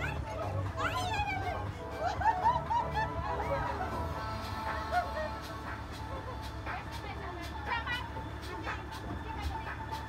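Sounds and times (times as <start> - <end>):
woman laughing: 0.3 - 6.6.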